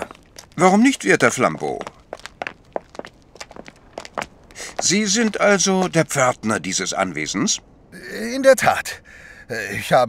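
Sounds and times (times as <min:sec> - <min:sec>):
footsteps walking: 0:00.0 - 0:06.5.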